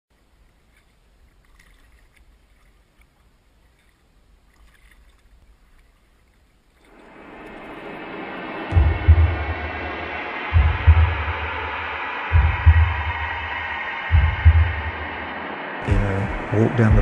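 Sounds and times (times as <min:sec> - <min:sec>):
paddle drips: 0:00.1 - 0:08.0
hissing swell: 0:06.9 - 0:17.0
low rumble: 0:06.9 - 0:17.0.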